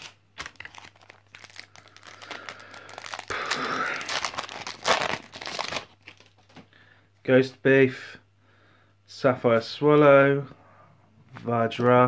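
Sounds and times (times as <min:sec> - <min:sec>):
foil wrapper tearing: 0:00.0 - 0:06.5
foil wrapper crinkling: 0:00.0 - 0:06.6.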